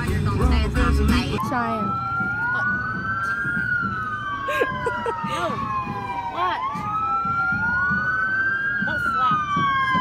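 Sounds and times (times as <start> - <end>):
sirens wailing: 1.4 - 10.0.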